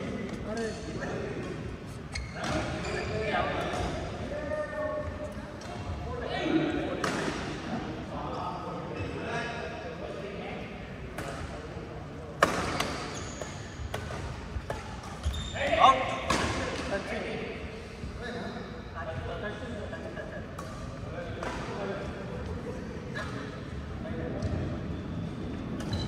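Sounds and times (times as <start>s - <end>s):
badminton rackets hitting shuttlecock: 12.4s - 15.3s.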